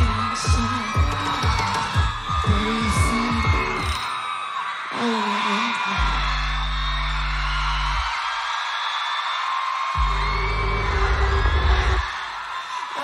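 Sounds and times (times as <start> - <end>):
crowd screaming and whooping: 0.0 - 13.0.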